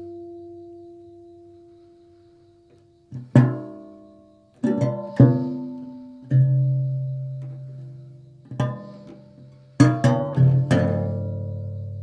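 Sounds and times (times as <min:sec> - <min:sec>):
solo guitar plucking: 0:03.1 - 0:07.8, 0:08.4 - 0:12.0.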